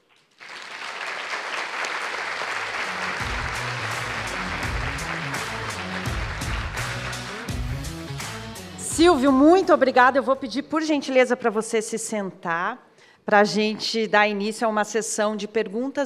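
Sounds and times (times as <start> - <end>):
audience applauding: 0.0 - 8.6
music with bass line and beat: 3.0 - 9.6.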